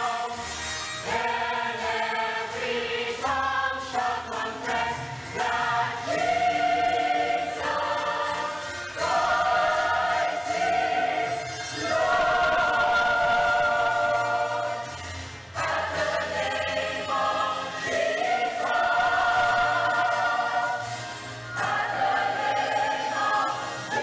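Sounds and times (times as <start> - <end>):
choir singing a hymn: 0.0 - 0.4, 1.0 - 24.0.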